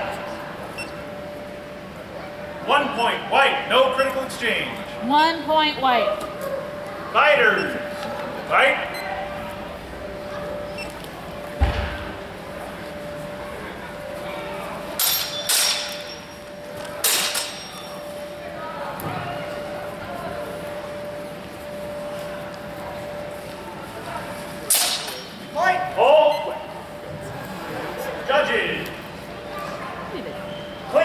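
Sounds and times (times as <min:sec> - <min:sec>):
steady hum: 0:00.0 - 0:31.0
steel swords clashing: 0:15.0 - 0:16.3, 0:24.7 - 0:25.4.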